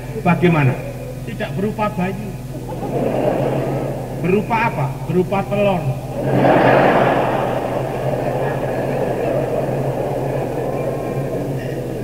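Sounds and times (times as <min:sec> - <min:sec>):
low cassette hum: 0:00.0 - 0:12.0
audience laughing: 0:02.4 - 0:12.0.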